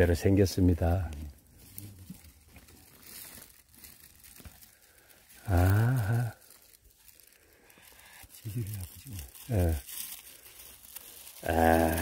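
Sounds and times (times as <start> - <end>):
rustling of dry pine needles: 0.0 - 12.0.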